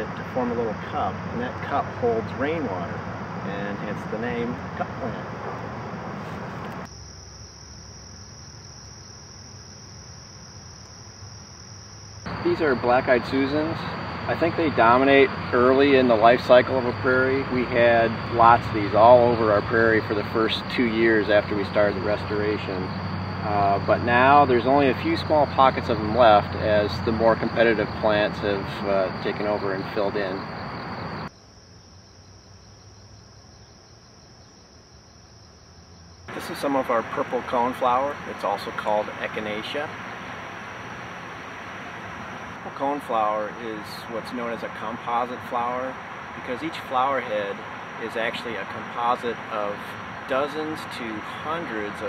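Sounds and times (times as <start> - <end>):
crickets trilling: 0.0 - 52.0.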